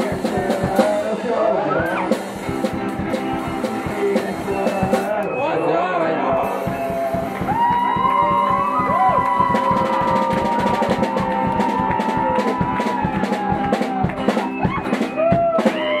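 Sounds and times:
drum kit beat: 0.0s - 5.2s, 6.3s - 16.0s
person singing: 0.0s - 8.9s
guitar: 0.0s - 16.0s.

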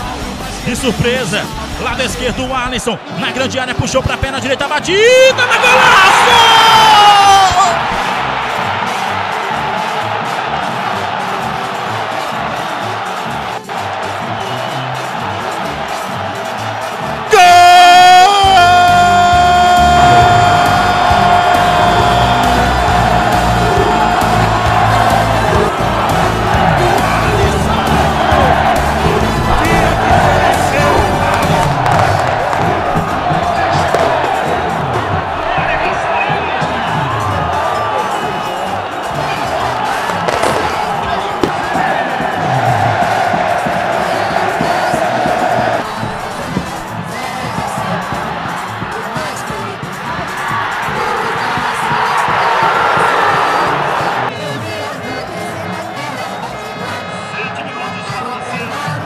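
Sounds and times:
music: 0.0s - 59.0s
stadium crowd cheering and shouting: 0.0s - 59.0s.

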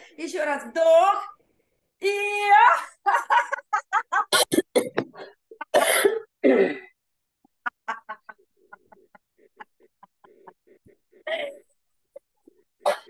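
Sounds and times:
woman laughing: 2.8s - 4.5s, 7.5s - 11.5s.

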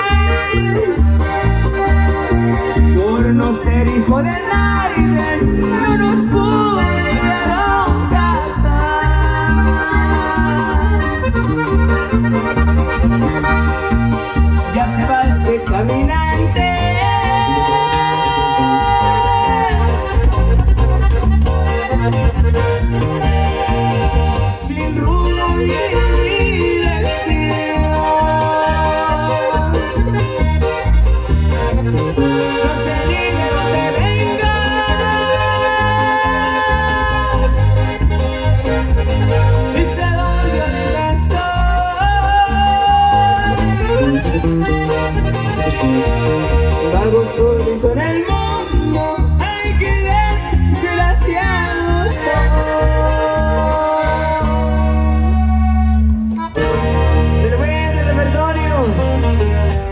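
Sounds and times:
accordion: 0.0s - 59.9s
bass: 0.0s - 59.9s
guitar: 0.0s - 59.9s.

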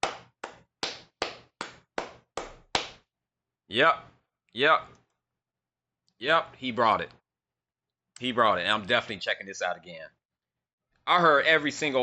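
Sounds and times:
person clapping hands: 0.0s - 3.0s.

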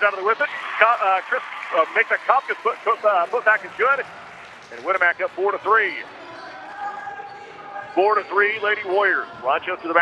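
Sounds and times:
crowd noise in gymnasium: 0.0s - 10.0s.

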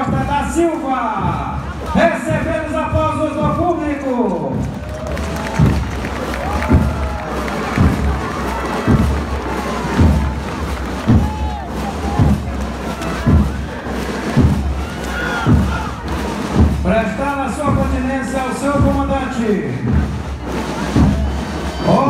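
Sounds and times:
crowd cheering and applauding: 0.0s - 2.6s, 3.8s - 19.0s, 19.9s - 22.0s
bass drum beating march time: 0.0s - 22.0s
people shouting: 4.8s - 16.7s, 20.5s - 22.0s.

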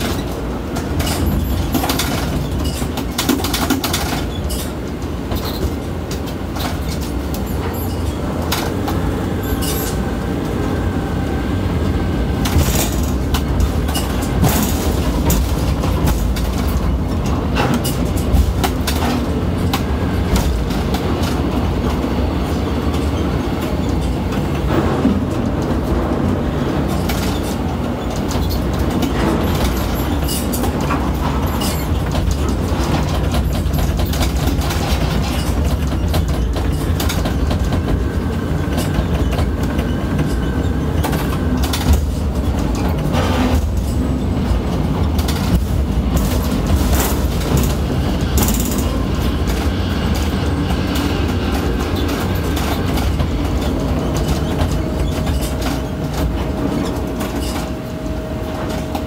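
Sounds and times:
crane machinery low rumble: 4.3s - 59.0s.

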